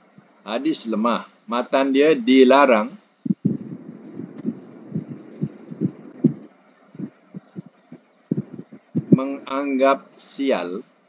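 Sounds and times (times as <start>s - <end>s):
faint hiss: 0.0s - 11.0s
soft low thumps: 3.3s - 9.4s.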